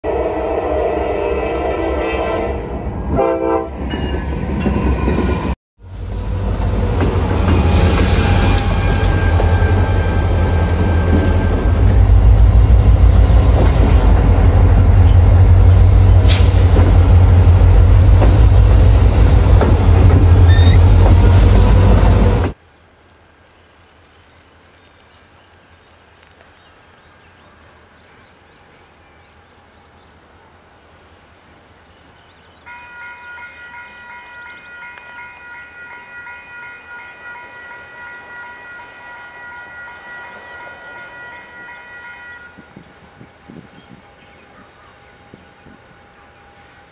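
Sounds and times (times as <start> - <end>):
locomotive horn: 0.0 - 3.8
freight train rumbling past: 0.0 - 22.6, 32.7 - 46.9
train wheel squeal: 7.5 - 11.8, 20.2 - 21.9, 39.4 - 45.8.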